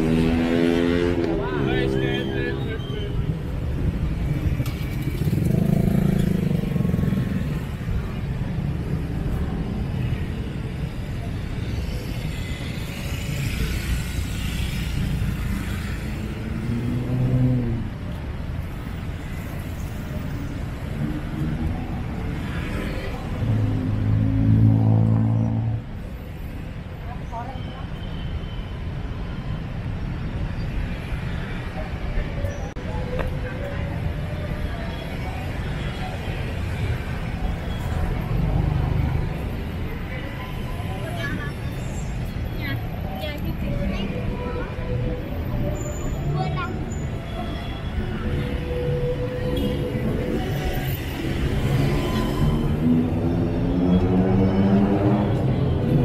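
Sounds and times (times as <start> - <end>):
passing motor vehicles: 0.0 - 27.9, 29.0 - 56.0
background din of traffic: 0.0 - 56.0
voices of passers-by: 0.0 - 56.0.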